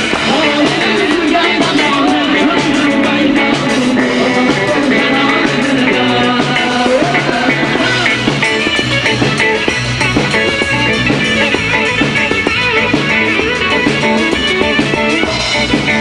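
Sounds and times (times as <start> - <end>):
drum kit beat: 0.0 - 16.0
guitar: 0.0 - 16.0.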